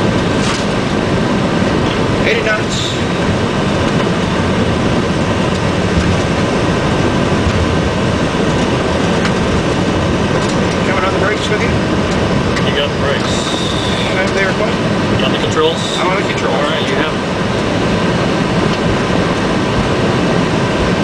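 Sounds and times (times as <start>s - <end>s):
jet engine and airflow noise: 0.0s - 21.0s
wheels rumbling on runway: 0.0s - 21.0s.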